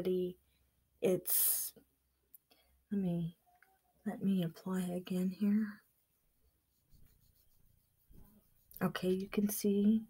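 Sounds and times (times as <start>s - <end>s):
applicator rubbing on skin: 5.0s - 9.4s.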